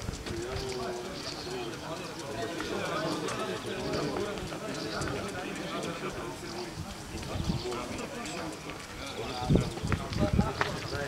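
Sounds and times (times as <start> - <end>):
men talking in background: 0.0 - 11.0.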